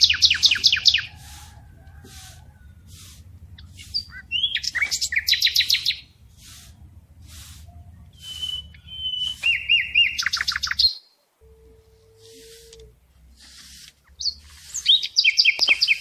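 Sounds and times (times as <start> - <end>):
broom sweeping dirt floor: 0.0 - 10.9, 11.6 - 16.0
songbird chirps and trills: 0.0 - 16.0.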